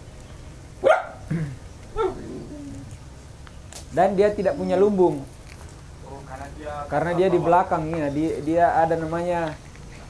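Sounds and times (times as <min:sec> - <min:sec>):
dog barking: 0:00.8 - 0:01.3.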